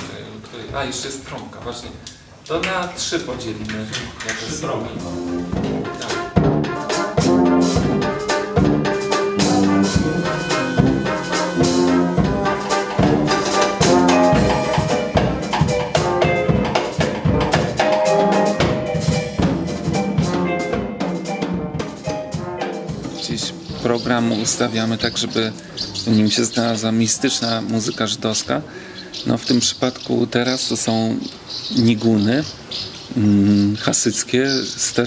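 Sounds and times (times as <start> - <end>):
snare drum strokes: 4.6 - 25.6
wind band playing a tune: 4.6 - 28.2.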